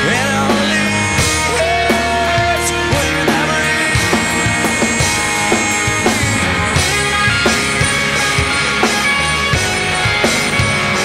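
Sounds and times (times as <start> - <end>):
distorted electric guitars: 0.0 - 11.0
drum kit beat: 0.0 - 11.0.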